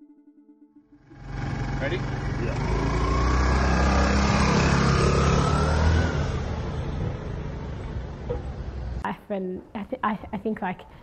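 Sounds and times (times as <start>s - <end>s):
road noise: 1.0s - 9.1s
scooter engine riding away: 1.1s - 9.0s.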